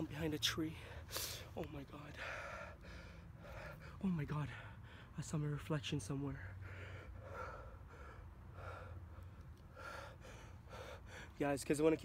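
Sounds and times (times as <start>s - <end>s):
low steady hum: 0.0s - 12.0s
man breathing heavily: 0.6s - 5.2s, 6.3s - 11.5s.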